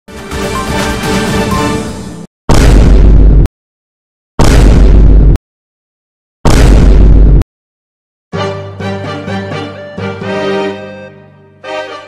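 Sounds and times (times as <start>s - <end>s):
bass-heavy impact hits: 4.4s - 5.4s, 6.5s - 7.4s.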